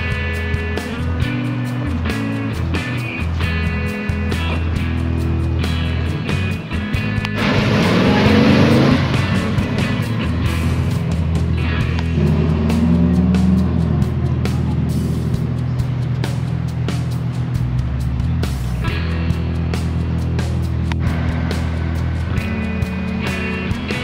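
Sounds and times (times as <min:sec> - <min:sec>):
background music with steady beat: 0:00.0 - 0:24.0
car engine revving: 0:00.0 - 0:24.0.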